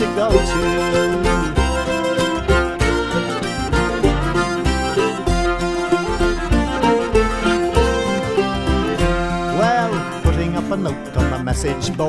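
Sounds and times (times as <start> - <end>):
folk band instrumental: 0.0 - 12.0
plucked acoustic strings: 0.0 - 12.0
pulsing bass: 0.0 - 12.0.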